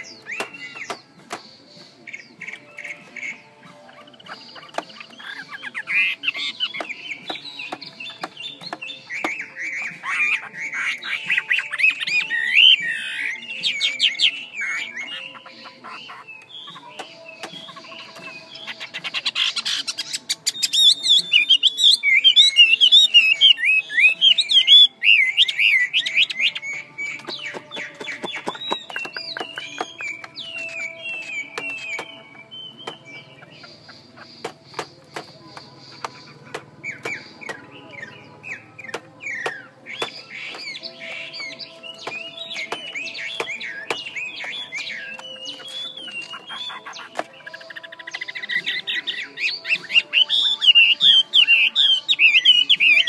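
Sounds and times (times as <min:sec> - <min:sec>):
bird calling with whistled notes: 0:00.0 - 0:53.0
sharp clicks: 0:27.2 - 0:32.2.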